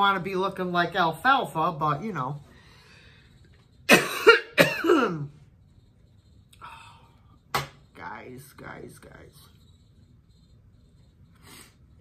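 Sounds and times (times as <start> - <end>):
woman inhaling: 2.5 - 3.4
woman coughing: 3.9 - 5.4.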